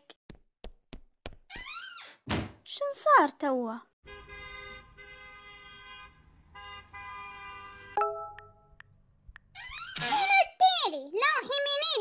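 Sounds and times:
car horn honking: 4.0s - 8.7s.

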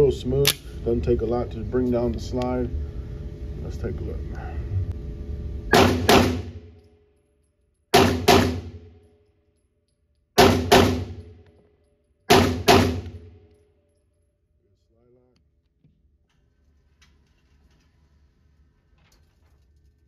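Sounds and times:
pistol shots in an indoor range: 5.7s - 14.6s.

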